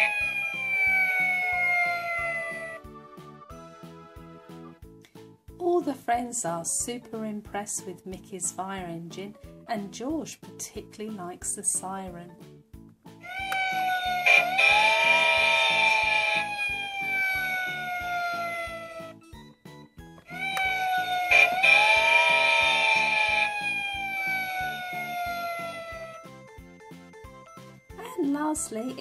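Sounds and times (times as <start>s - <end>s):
toy fire engine siren wailing: 0.0s - 2.8s, 13.3s - 19.2s, 20.3s - 26.3s
background music: 0.0s - 29.0s.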